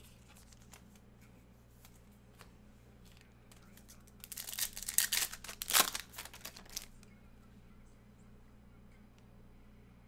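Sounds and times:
foil wrapper crinkling and tearing: 3.6s - 7.0s.

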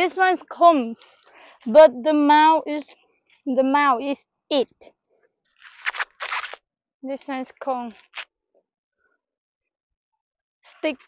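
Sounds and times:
corn husk crunching and tearing: 5.6s - 6.6s, 8.0s - 8.2s.

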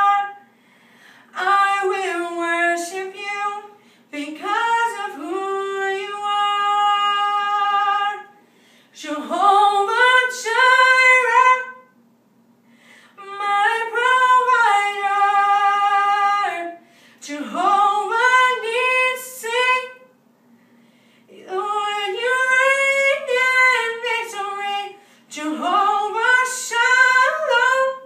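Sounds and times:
woman singing unaccompanied: 0.0s - 0.4s, 1.3s - 8.3s, 9.0s - 11.9s, 13.2s - 20.1s, 21.3s - 28.0s.

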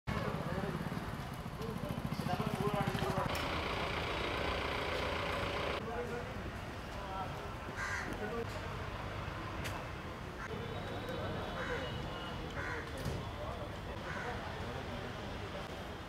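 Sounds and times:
vehicle engine idling: 0.2s - 5.8s
people chattering: 10.5s - 16.0s.

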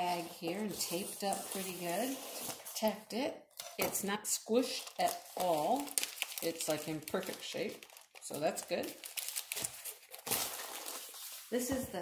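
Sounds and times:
plastic bag crinkling: 4.6s - 11.6s.

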